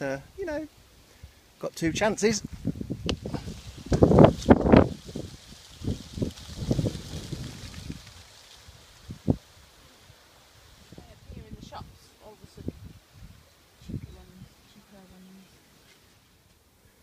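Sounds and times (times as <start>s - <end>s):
leaves rustling: 0.0s - 17.0s
wind buffeting microphone: 1.8s - 9.5s, 10.7s - 15.2s.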